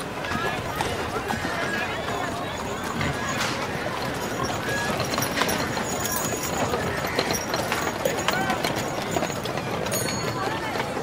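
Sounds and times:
crowd of voices chattering: 0.0s - 11.0s
horse hooves clip-clopping: 0.0s - 11.0s.

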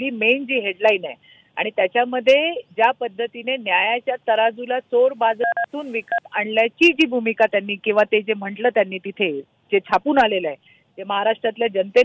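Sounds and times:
speech over telephone line: 0.0s - 12.0s
two-tone keypad beep: 5.4s - 6.2s.

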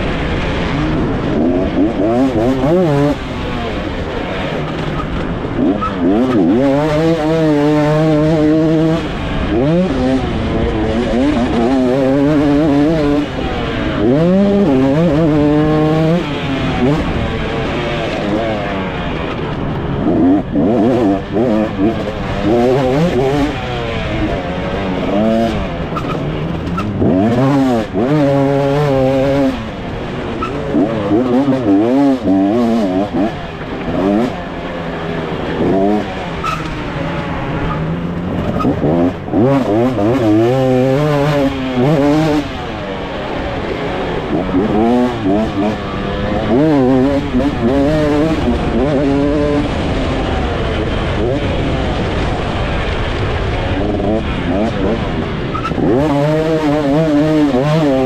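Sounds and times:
motocross engine revving: 0.0s - 58.0s.

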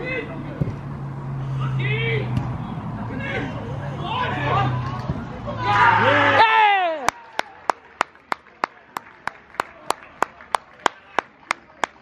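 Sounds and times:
players shouting: 3.1s - 7.7s.

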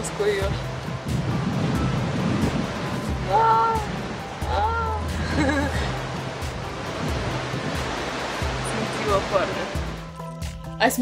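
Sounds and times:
surf washing over rocks: 0.0s - 10.1s
faint background music: 0.0s - 11.0s.

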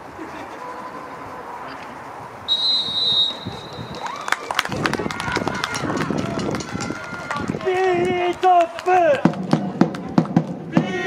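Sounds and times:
referee's whistle blast: 2.5s - 4.0s
people clapping: 3.8s - 10.6s.

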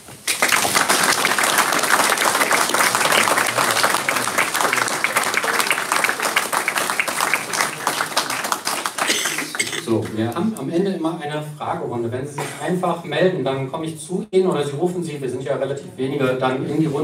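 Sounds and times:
small audience clapping: 0.0s - 10.7s.

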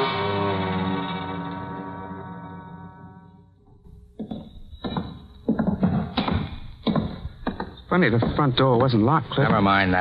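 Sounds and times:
heavy footsteps on wooden boards: 4.0s - 10.0s.

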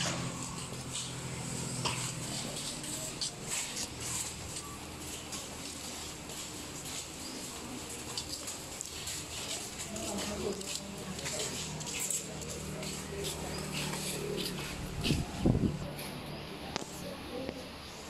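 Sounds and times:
murmur of people talking: 0.0s - 18.0s.

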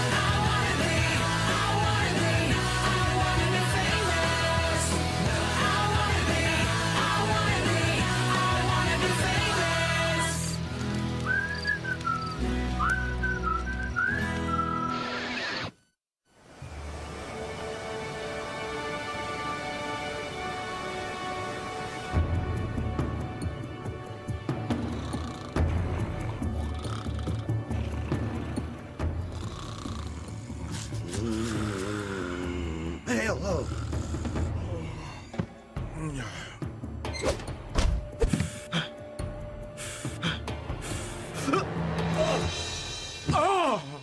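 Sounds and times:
whistled melody with guitar and bass: 10.4s - 15.7s
soft background music: 16.5s - 44.0s
cartoon snoring: 24.7s - 34.7s.

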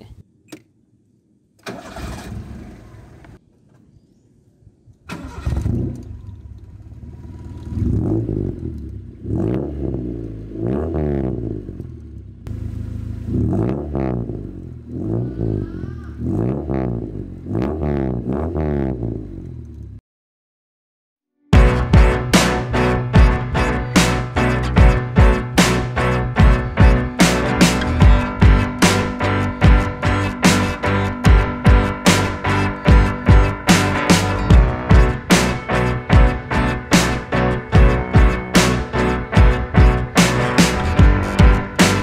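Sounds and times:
car engine revving: 5.2s - 20.0s, 21.6s - 42.0s.

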